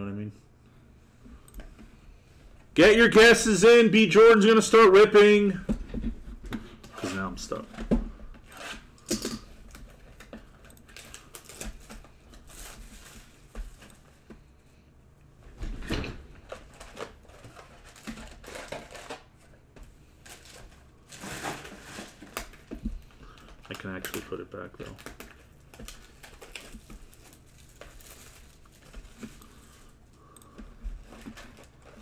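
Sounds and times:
cardboard and wrapper crinkling: 0:09.7 - 0:13.9, 0:16.5 - 0:19.3, 0:20.2 - 0:22.7, 0:23.3 - 0:30.0, 0:30.9 - 0:32.0.

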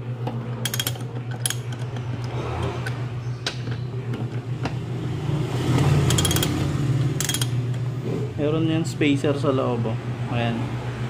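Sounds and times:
socket ratchet clicking: 0:00.6 - 0:03.8, 0:05.8 - 0:07.6.

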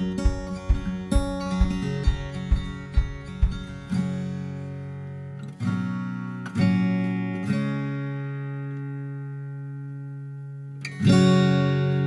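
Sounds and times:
acoustic guitar strummed chords: 0:00.0 - 0:12.0.

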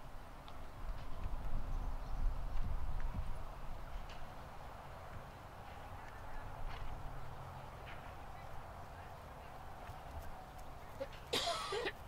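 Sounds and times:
horse trotting on grass: 0:00.0 - 0:12.0.

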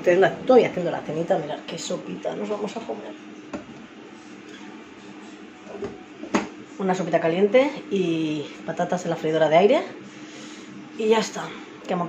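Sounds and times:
kitchen appliance hum: 0:00.0 - 0:12.0.

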